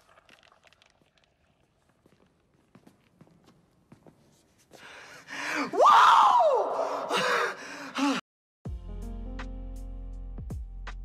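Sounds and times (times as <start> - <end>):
excited vocal whoops: 5.7 - 7.2.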